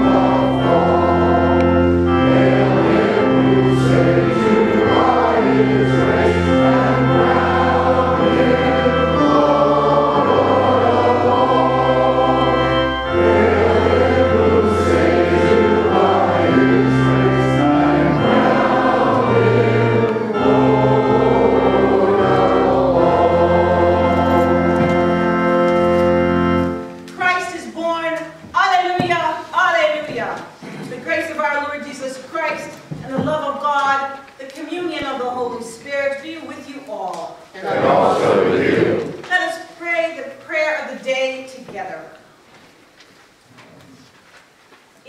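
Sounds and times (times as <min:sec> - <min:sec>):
voices singing a hymn: 0:00.0 - 0:27.6, 0:37.5 - 0:39.3
organ chords: 0:00.0 - 0:27.8, 0:37.7 - 0:39.3.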